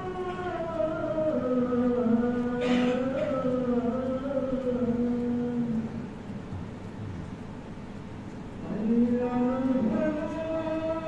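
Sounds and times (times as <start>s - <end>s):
man chanting: 0.0s - 6.0s, 8.6s - 11.0s.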